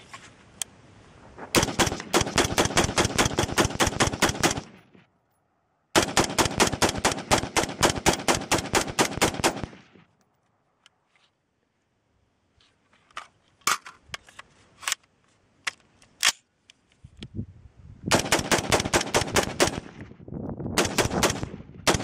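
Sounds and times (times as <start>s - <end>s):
rifle firing rapidly: 1.6s - 4.8s, 6.0s - 9.9s, 18.1s - 20.0s, 20.8s - 22.0s.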